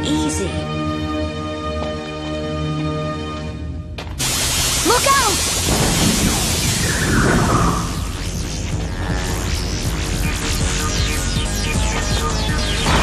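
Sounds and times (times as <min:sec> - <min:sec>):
dramatic music: 0:00.0 - 0:13.0
cartoon rushing blast: 0:05.2 - 0:08.2.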